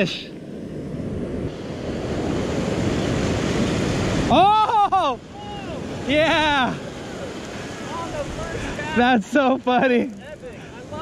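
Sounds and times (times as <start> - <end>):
wind rumbling on microphone: 0.0 - 9.2
ocean surf breaking: 0.0 - 11.0.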